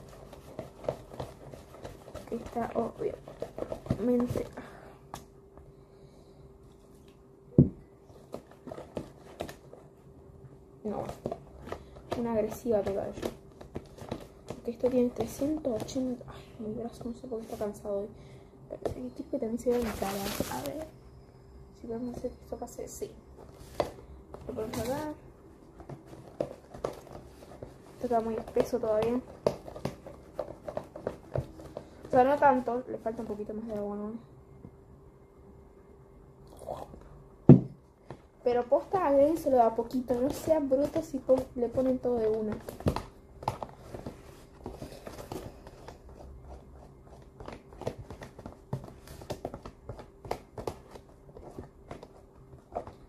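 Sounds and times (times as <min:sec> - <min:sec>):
hand mixing thick batter: 0:00.0 - 0:04.9, 0:10.8 - 0:18.0, 0:23.8 - 0:34.0, 0:38.4 - 0:53.0
faint steady hum: 0:00.0 - 0:53.0.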